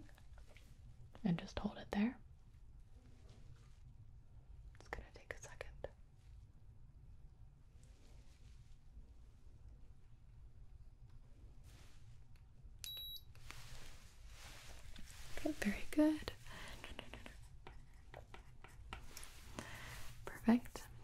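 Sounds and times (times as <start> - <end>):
thermometer beep: 12.9 - 13.3
soft voice sounds: 15.3 - 17.5.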